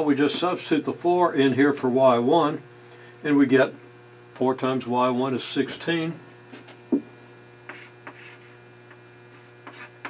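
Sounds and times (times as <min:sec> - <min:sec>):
electrical mains hum: 0:00.0 - 0:10.0
chalk scratching on blackboard: 0:07.7 - 0:08.6, 0:09.3 - 0:10.0.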